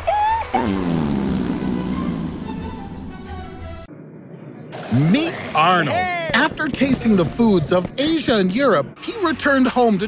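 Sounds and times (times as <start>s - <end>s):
cartoon fart sound effect: 0.5s - 3.9s.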